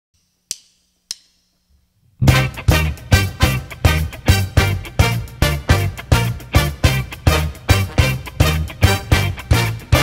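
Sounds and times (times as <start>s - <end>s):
sharp percussive clicks: 0.2s - 1.6s.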